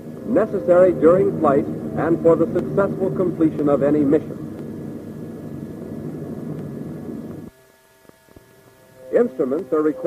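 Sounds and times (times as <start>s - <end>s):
faint hum: 0.0s - 10.0s
propeller plane engines droning: 0.0s - 10.0s.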